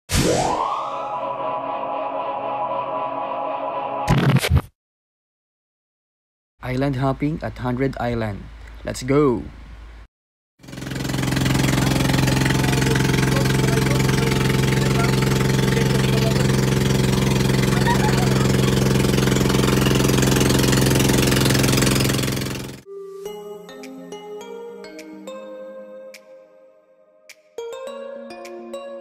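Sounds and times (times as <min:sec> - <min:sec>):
boat engine humming: 0:10.7 - 0:22.8
background music: 0:22.9 - 0:29.0.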